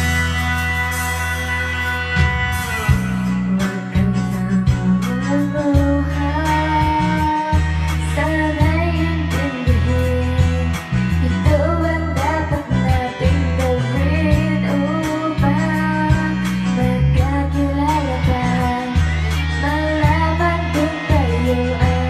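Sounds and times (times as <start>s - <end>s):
backing track with heavy bass: 0.0s - 22.0s
woman singing karaoke: 2.7s - 22.0s.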